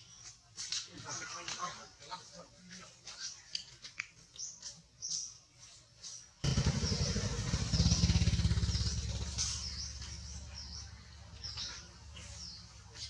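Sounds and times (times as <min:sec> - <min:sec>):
low engine rumble: 0:06.4 - 0:13.0.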